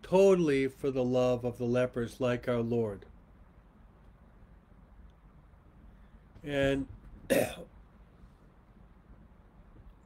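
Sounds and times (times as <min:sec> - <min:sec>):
man clearing his throat: 0:07.3 - 0:07.7.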